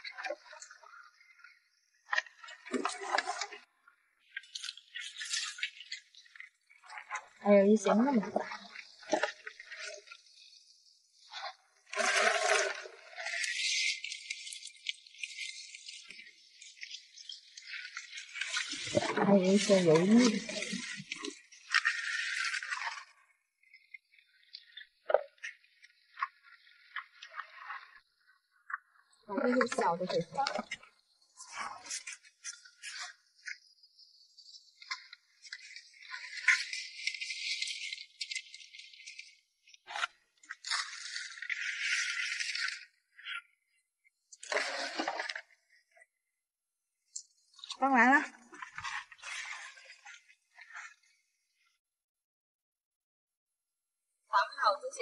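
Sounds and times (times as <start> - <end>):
wet scratchy rustling in plastic basin: 18.9 - 21.2.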